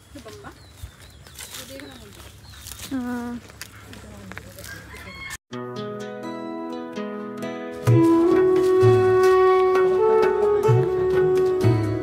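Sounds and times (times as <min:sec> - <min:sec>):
background music with sustained notes: 0:05.5 - 0:12.0.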